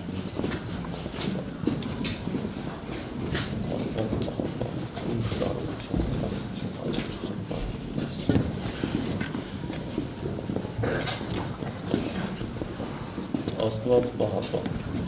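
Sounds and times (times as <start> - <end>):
people shuffling and rustling: 0.0 - 15.0.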